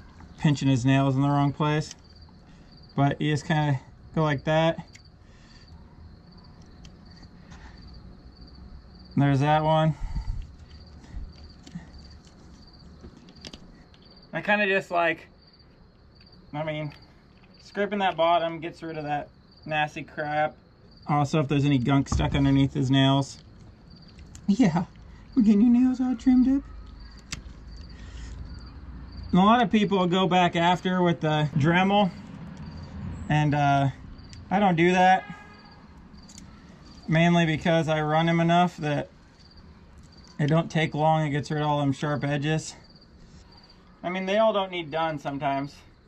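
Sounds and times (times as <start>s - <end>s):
insects chirping: 0.0s - 46.0s.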